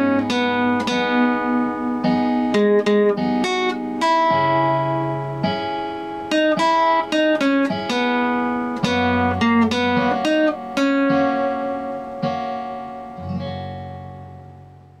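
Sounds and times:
fingerpicked classical guitar: 0.0s - 15.0s.

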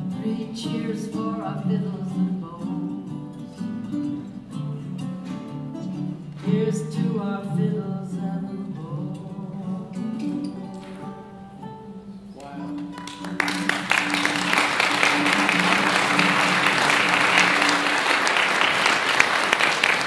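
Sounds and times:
ukulele and guitar playing: 0.0s - 19.9s
audience applause: 12.9s - 20.0s.

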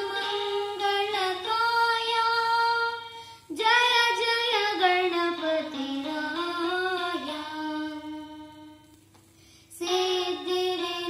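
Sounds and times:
boy singing a devotional song: 0.0s - 8.9s, 9.6s - 11.0s.

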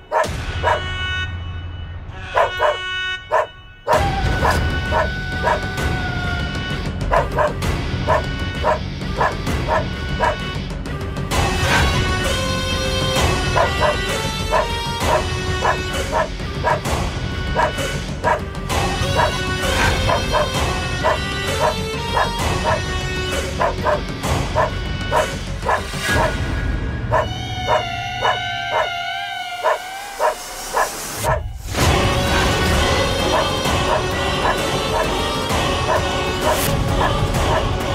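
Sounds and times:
dog barking: 0.0s - 0.9s, 2.3s - 5.6s, 7.1s - 10.4s, 13.5s - 16.8s, 17.6s - 18.4s, 19.1s - 22.8s, 23.6s - 26.4s, 27.1s - 29.0s, 29.6s - 31.5s, 33.3s - 35.1s, 35.8s - 37.7s
background music: 0.0s - 37.9s.

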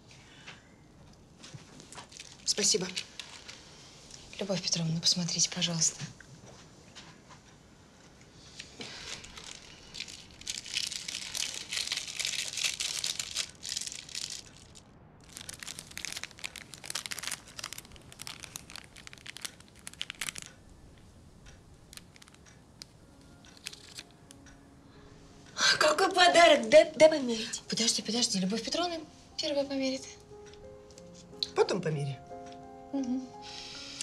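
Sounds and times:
foil wrapping crinkling: 2.0s - 3.7s, 8.8s - 20.6s, 21.9s - 24.2s.

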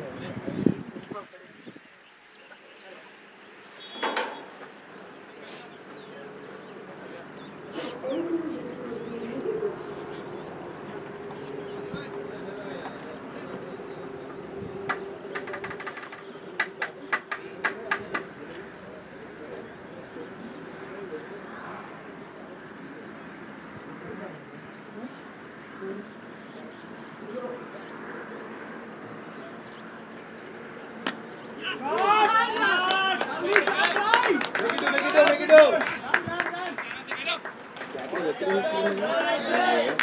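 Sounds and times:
faint bird chirps: 5.3s - 18.8s, 23.0s - 28.1s
players shouting: 6.0s - 21.9s, 31.0s - 40.0s
sharp clicks: 14.9s - 18.4s.

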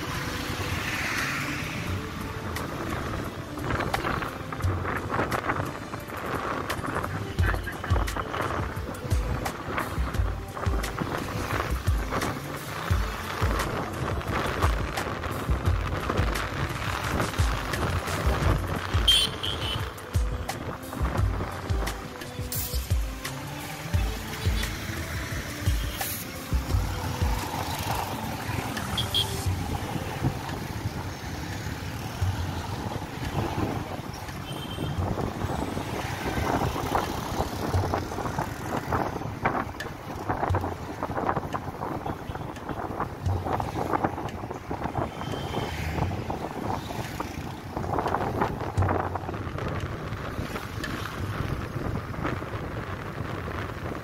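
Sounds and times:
wind buffeting microphone: 26.5s - 54.0s.

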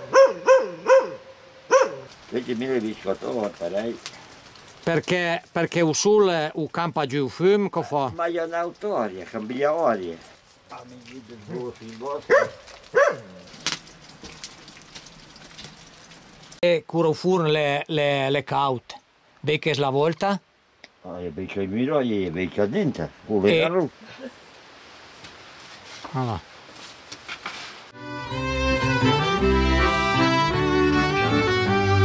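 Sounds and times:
dog barking: 0.0s - 2.1s, 12.3s - 13.4s
wood fire popping: 2.0s - 16.6s.

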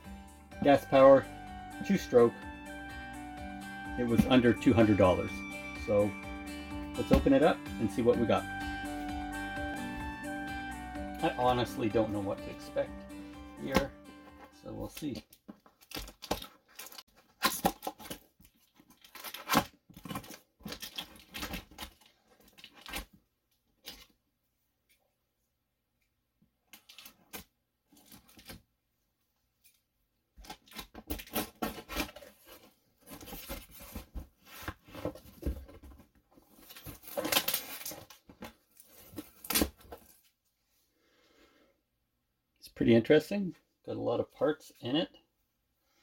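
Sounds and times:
packing tape ripping: 15.8s - 23.1s, 30.4s - 32.5s, 36.7s - 38.2s.

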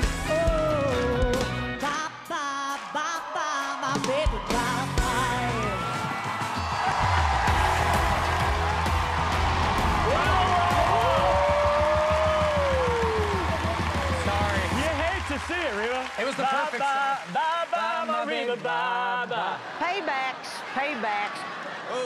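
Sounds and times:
band music: 0.0s - 2.6s, 3.8s - 16.0s
audience cheering and clapping: 1.8s - 22.0s
people shouting and whooping: 2.3s - 14.7s.

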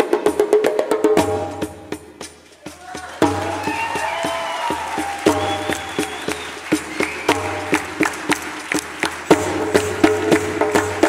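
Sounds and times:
hand drums playing fast rhythm: 0.0s - 11.0s.

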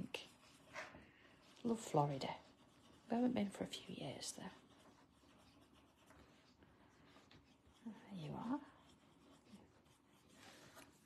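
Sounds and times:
drawing tool scratching: 0.0s - 11.0s.

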